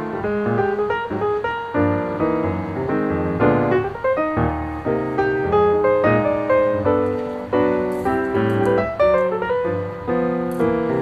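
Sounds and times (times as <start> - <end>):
piano music: 0.0 - 11.0.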